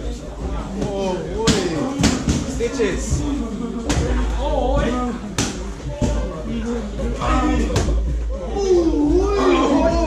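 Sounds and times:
people talking: 0.0 - 10.0.

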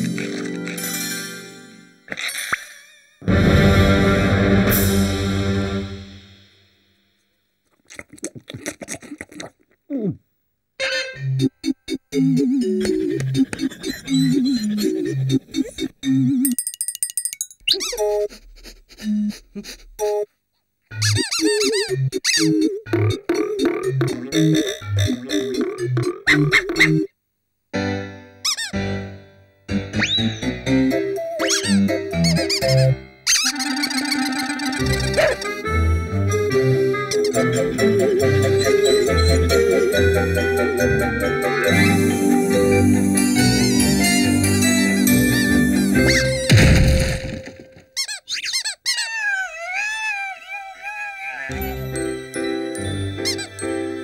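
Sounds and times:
background music: 0.0 - 2.2, 3.2 - 6.8, 27.8 - 46.8, 51.5 - 54.0
high-pitched cartoon squeaking: 13.8 - 16.5, 17.6 - 18.3, 20.9 - 22.8, 26.2 - 27.1, 28.4 - 28.8, 30.0 - 30.5, 31.2 - 35.6, 46.0 - 46.5, 47.9 - 51.6, 53.2 - 53.6.

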